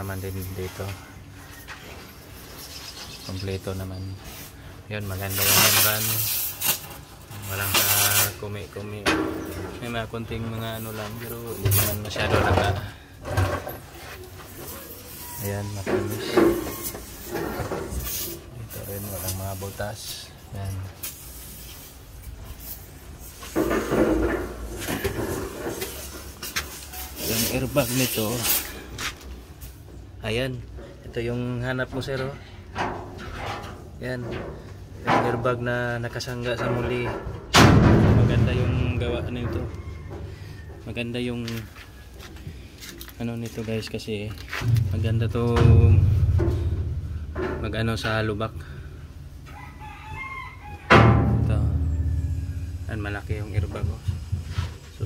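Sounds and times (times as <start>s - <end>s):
rubbing and scraping: 0.0s - 12.8s, 13.4s - 20.2s, 21.1s - 29.2s, 50.9s - 55.0s
loud thump: 37.5s - 39.1s, 44.6s - 47.7s, 50.9s - 54.8s
rooster crowing: 39.6s - 40.8s, 49.4s - 51.2s
man's voice: 43.2s - 46.4s.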